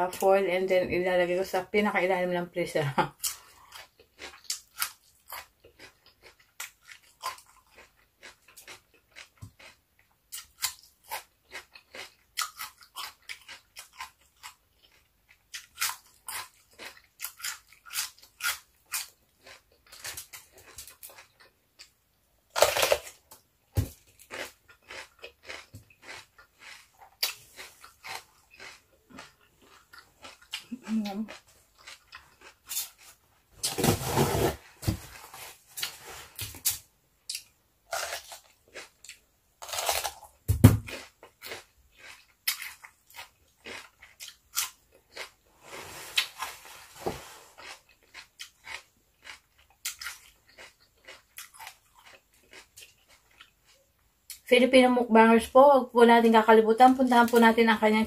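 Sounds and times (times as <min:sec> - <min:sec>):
crunching and chewing cucumber: 0:03.1 - 0:33.9, 0:35.1 - 0:46.8, 0:47.4 - 0:54.5.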